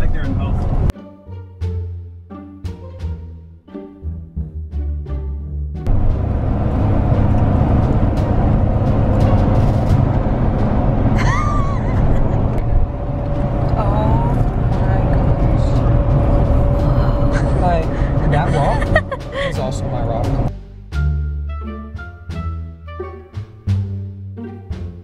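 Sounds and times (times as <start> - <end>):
car road noise of tyres and wind: 0.0 - 0.9, 5.9 - 20.5.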